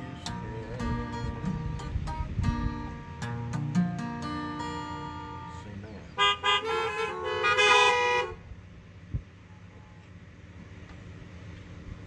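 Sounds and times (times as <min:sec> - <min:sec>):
car horns honking: 0:05.2 - 0:08.6.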